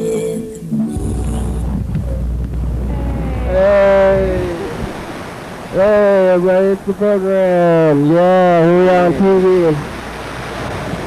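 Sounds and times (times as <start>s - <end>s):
theme music: 1.0s - 4.8s
falling voice-like note: 1.0s - 5.0s
loud rushing noise with rumble: 1.0s - 5.7s.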